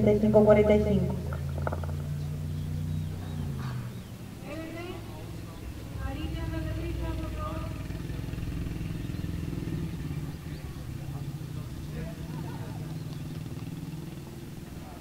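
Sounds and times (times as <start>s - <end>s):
steady low drone: 0.0s - 15.0s.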